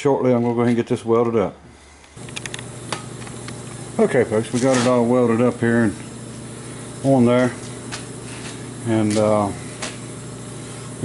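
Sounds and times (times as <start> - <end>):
workshop background hiss: 0.1 - 11.0.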